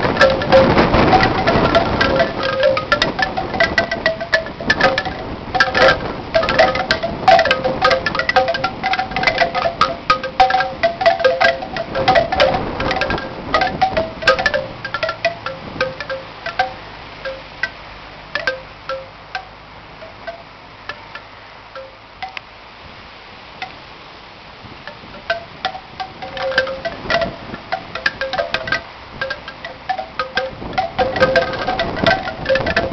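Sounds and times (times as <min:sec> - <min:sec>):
bamboo wind chime knocking: 0:00.0 - 0:22.5, 0:24.8 - 0:32.9.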